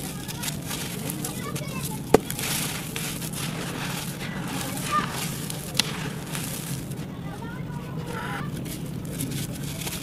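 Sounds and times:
hands crumbling dry dirt: 0:00.0 - 0:10.0.

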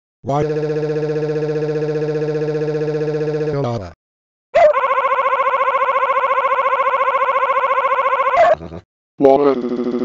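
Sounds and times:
synthetic voice wailing: 0:00.3 - 0:04.0, 0:08.3 - 0:10.0.

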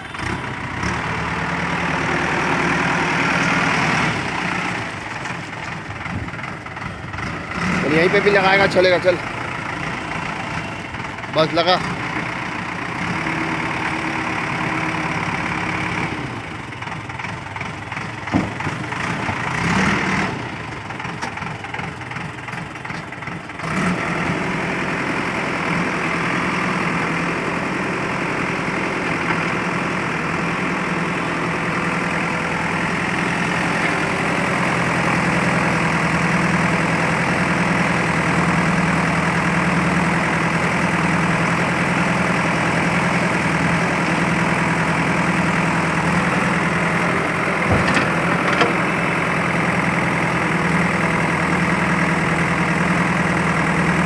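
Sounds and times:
diesel engine running: 0:00.0 - 0:54.0
engine knock: 0:16.9 - 0:19.7
backhoe digging into rubble: 0:45.6 - 0:50.0.

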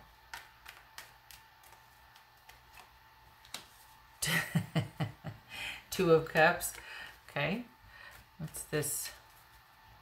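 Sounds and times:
cards clicking and tapping: 0:00.1 - 0:03.8.

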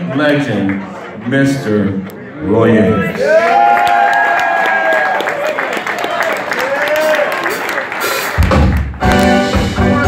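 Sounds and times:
jazz-funk band playing: 0:07.5 - 0:10.0.

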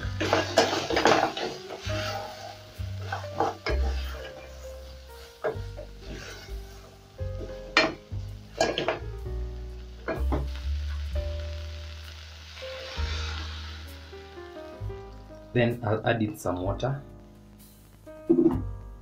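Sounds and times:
meat and vegetables sizzling in a pot: 0:00.0 - 0:18.5
wooden spoon knocking and scraping pot: 0:00.2 - 0:04.5, 0:08.6 - 0:09.0.

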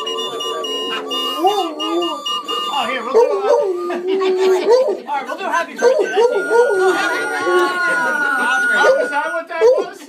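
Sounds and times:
party whistle note: 0:00.0 - 0:03.3
people talking and laughing: 0:00.0 - 0:10.0.

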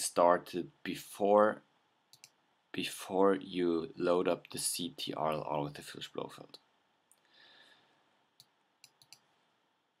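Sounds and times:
faint computer mouse clicks: 0:02.1 - 0:02.4, 0:08.4 - 0:09.3.

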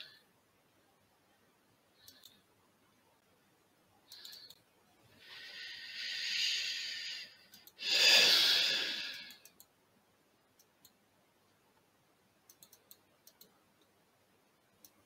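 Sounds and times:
mouse clicks: 0:02.0 - 0:02.4, 0:04.1 - 0:04.6, 0:09.1 - 0:09.8, 0:10.6 - 0:11.0, 0:12.5 - 0:14.0
person breathing in and sighing: 0:05.2 - 0:09.4.

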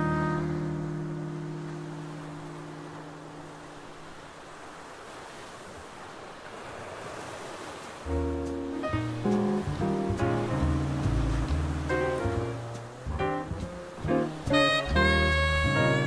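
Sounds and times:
jazz band with bass and horns: 0:00.0 - 0:01.6, 0:08.1 - 0:16.0
ocean surf on beach: 0:00.0 - 0:16.0.

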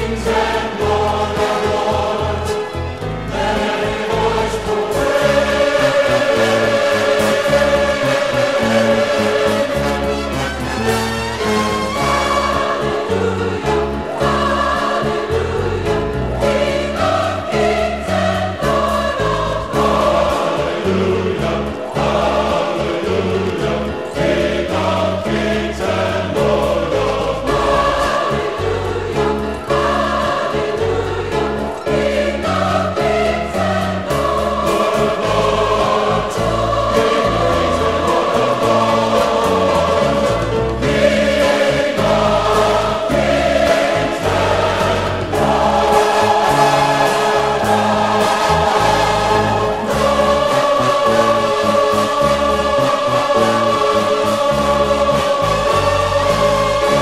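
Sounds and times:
choir singing a hymn: 0:00.0 - 0:57.0.

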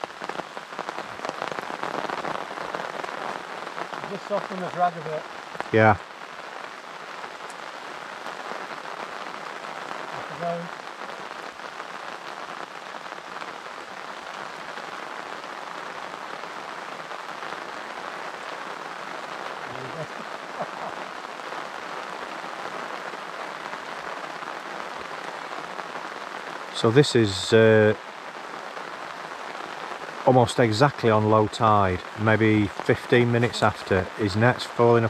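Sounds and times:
heavy rain falling: 0:00.0 - 0:35.0.

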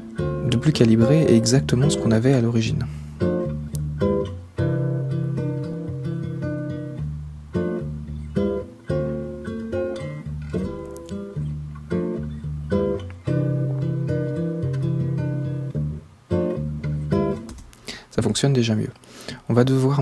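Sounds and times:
plucked guitar chords: 0:00.0 - 0:17.5.

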